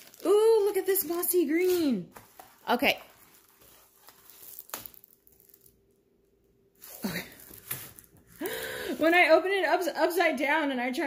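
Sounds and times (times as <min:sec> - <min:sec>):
canvas and paper rustling: 0:00.0 - 0:05.8.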